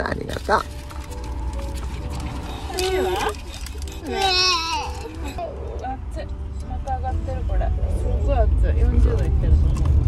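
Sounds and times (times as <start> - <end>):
car engine rumble: 0.0 - 10.0
faint background music: 0.0 - 10.0
toddler whimpering: 2.7 - 5.7.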